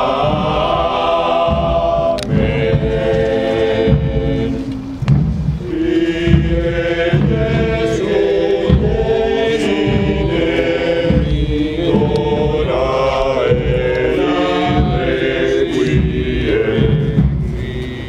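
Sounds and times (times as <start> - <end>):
choir chanting: 0.0 - 18.0.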